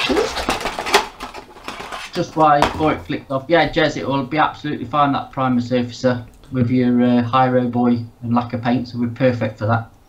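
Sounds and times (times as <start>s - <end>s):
plastic packaging crinkling: 0.0s - 3.1s.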